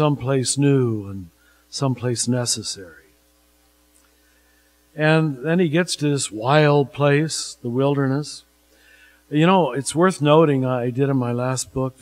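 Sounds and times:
electrical mains hum: 0:00.0 - 0:12.0
person speaking: 0:09.3 - 0:12.0.

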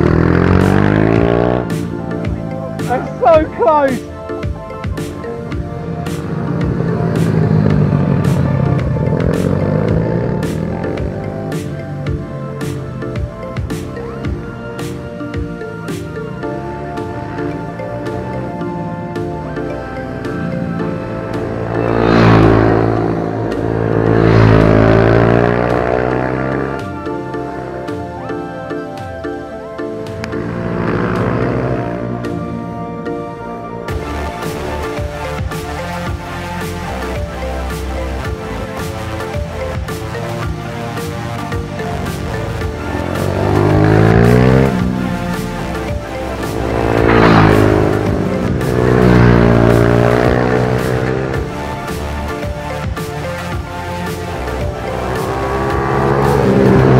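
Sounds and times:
minibike engines passing: 0:00.0 - 0:28.9, 0:30.1 - 0:32.8, 0:33.9 - 0:56.9
background music: 0:00.0 - 0:56.9.

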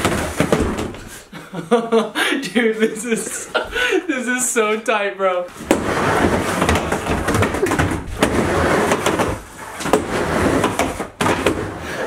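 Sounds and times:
skateboard wheels rolling on ramp: 0:05.5 - 0:12.0.

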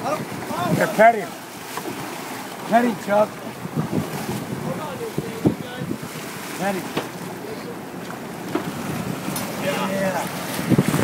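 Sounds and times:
boat engine humming: 0:00.0 - 0:11.0
water rushing along hull: 0:00.0 - 0:11.0
wind on microphone: 0:03.5 - 0:06.4, 0:08.5 - 0:11.0.

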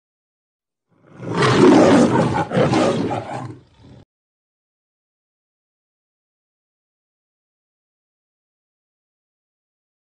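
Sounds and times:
lion roaring: 0:01.0 - 0:04.1.

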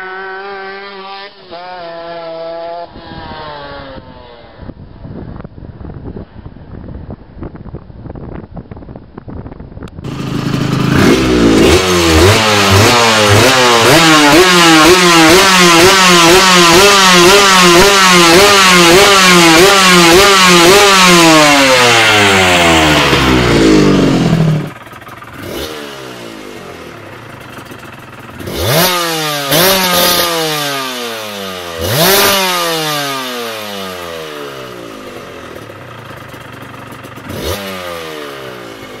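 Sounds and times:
motorcycle engine revving: 0:00.0 - 0:05.0, 0:09.9 - 0:39.0
motorcycle idling with throttle blips: 0:07.4 - 0:32.4, 0:33.1 - 0:39.0.

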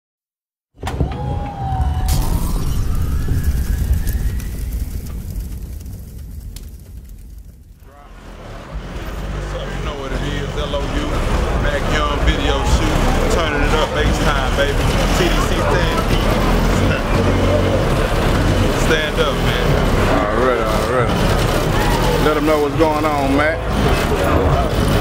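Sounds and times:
street noise: 0:00.8 - 0:25.0
deep bass rumble: 0:01.1 - 0:25.0
rising sweep: 0:01.6 - 0:25.0
people talking: 0:07.9 - 0:25.0.

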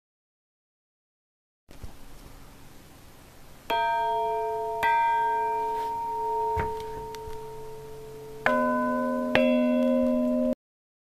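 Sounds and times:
church bell ringing: 0:03.7 - 0:10.6
deeper church bell ringing: 0:03.7 - 0:10.6.

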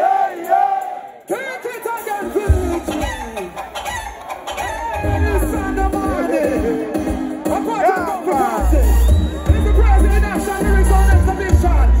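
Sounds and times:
crowd shouting and whooping: 0:00.0 - 0:12.0
deep bass from speakers: 0:02.5 - 0:03.8, 0:04.8 - 0:07.7, 0:08.6 - 0:12.0.

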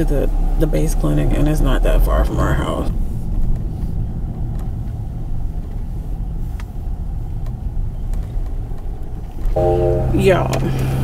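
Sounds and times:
car tyre and engine rumble: 0:00.0 - 0:11.0
steady hum with held tone: 0:09.6 - 0:11.0.

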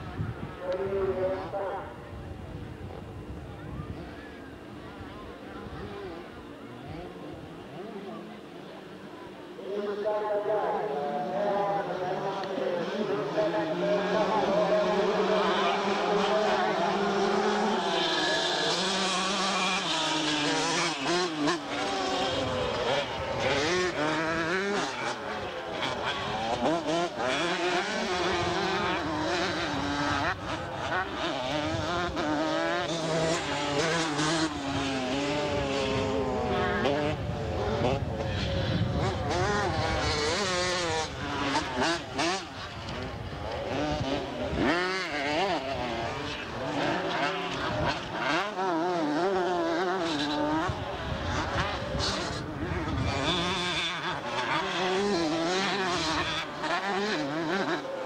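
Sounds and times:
motocross bikes revving: 0:00.0 - 0:58.0.

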